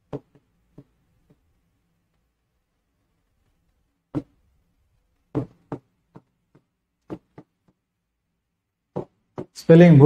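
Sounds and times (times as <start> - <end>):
marker tapping on board: 0.0 - 1.5, 4.1 - 4.4, 5.3 - 7.8, 8.9 - 9.6.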